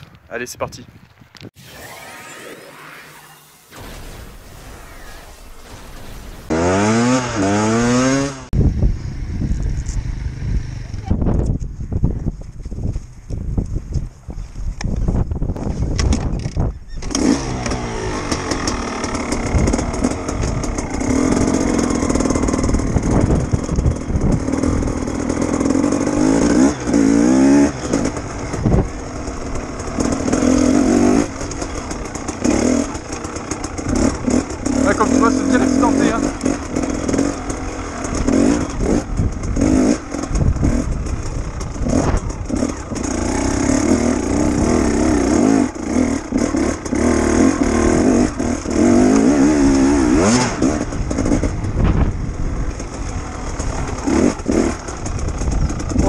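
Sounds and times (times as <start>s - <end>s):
motorcycle engine revving: 4.8s - 11.6s, 17.0s - 56.0s.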